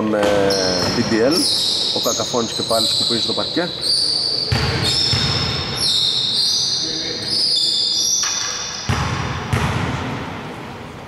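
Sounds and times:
shoes squeaking on wooden floor: 0:00.2 - 0:08.8.

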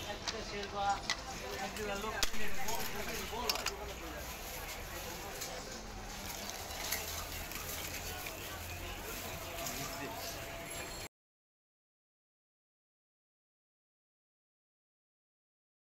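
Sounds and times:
street noise: 0:00.0 - 0:11.1
voices talking: 0:00.0 - 0:11.1.

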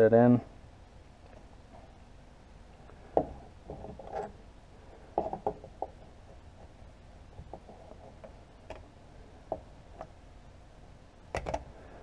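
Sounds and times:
hard plastic clicks and knocks: 0:11.3 - 0:11.7.

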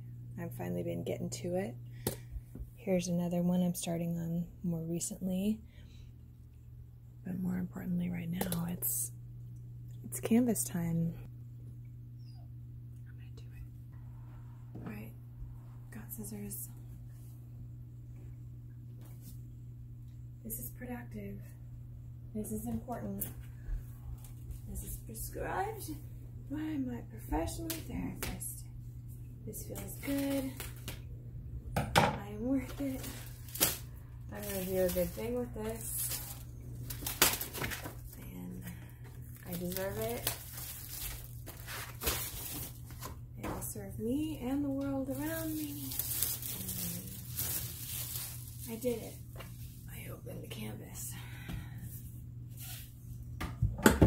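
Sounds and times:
steady low hum: 0:00.0 - 0:54.0
plastic wrapper crinkling: 0:32.6 - 0:38.2, 0:39.2 - 0:43.1, 0:45.0 - 0:49.2
handling rustle: 0:45.1 - 0:49.6.

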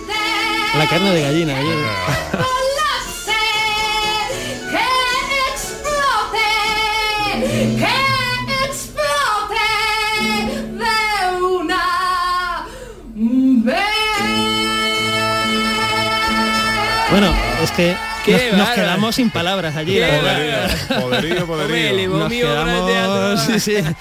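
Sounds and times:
woman singing with vibrato: 0:01.6 - 0:19.0.

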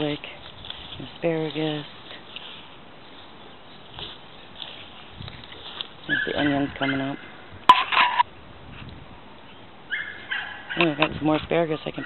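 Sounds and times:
farm bird calling: 0:01.5 - 0:08.3, 0:09.4 - 0:12.0.

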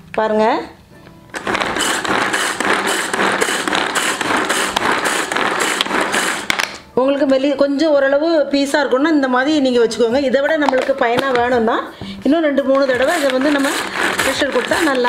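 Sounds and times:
blades chopping vegetables: 0:01.4 - 0:06.6, 0:12.9 - 0:15.0
pull cord zipping: 0:12.9 - 0:15.0.

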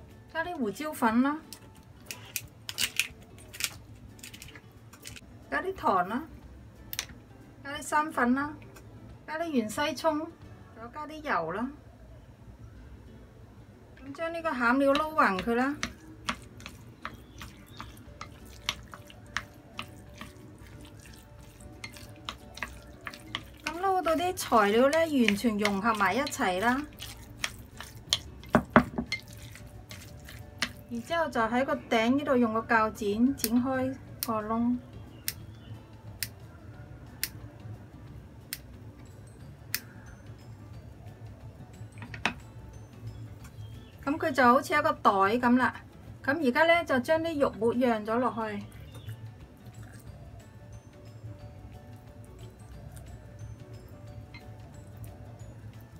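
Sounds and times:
chopsticks tapping glass bowl: 0:14.9 - 0:30.9
chopsticks stirring wet filling: 0:14.9 - 0:31.1, 0:48.6 - 0:50.1.

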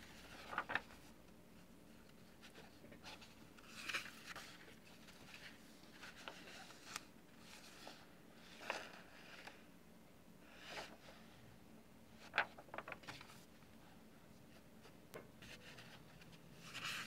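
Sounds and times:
paper rustling and crinkling: 0:00.0 - 0:01.2, 0:01.9 - 0:09.6, 0:10.4 - 0:11.3, 0:12.2 - 0:13.5, 0:15.4 - 0:17.0
faint low hum: 0:00.0 - 0:17.0.

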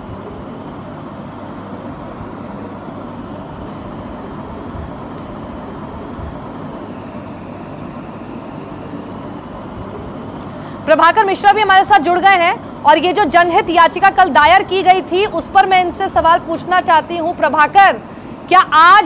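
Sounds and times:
steady ambient rumble: 0:00.0 - 0:19.0.

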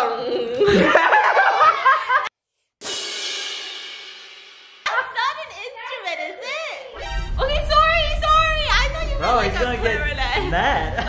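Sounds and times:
cymbal crash ringing: 0:02.8 - 0:05.0
voices: 0:04.9 - 0:11.0.

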